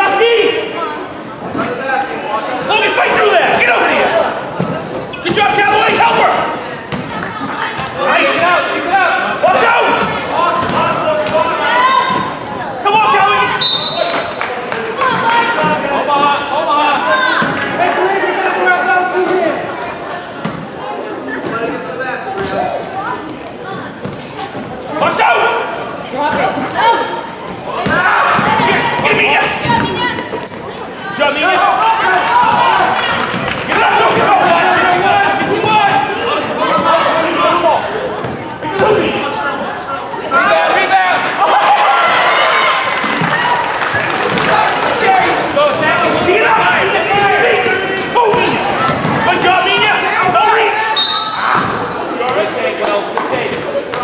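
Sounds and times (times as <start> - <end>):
indistinct shouting voices: 2.3 - 21.4, 22.4 - 52.7
ball bouncing on hardwood court: 6.9 - 7.9, 27.8 - 30.3, 47.2 - 50.4.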